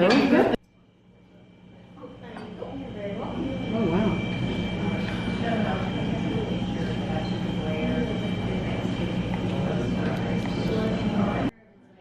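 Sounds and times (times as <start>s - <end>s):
low hum and rumble: 0.6s - 12.0s
distant chatter: 1.2s - 11.5s.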